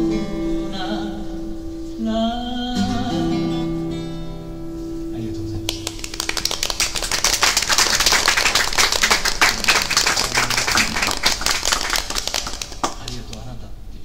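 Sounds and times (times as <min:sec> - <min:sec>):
acoustic guitar chord ringing: 0:00.0 - 0:05.7
small audience clapping: 0:05.7 - 0:13.6.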